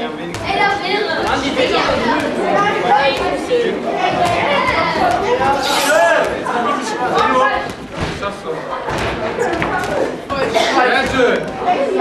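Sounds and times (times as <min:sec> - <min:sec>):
young people chattering: 0:00.0 - 0:12.0.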